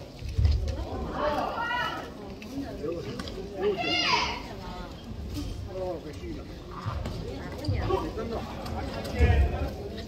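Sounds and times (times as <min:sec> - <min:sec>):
low hall noise: 0:00.0 - 0:10.0
people shouting: 0:01.0 - 0:02.1.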